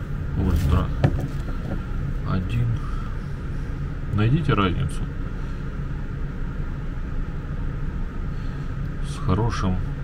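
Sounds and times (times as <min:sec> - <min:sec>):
faint steady hum: 0:00.0 - 0:10.0
low background rumble: 0:00.0 - 0:10.0.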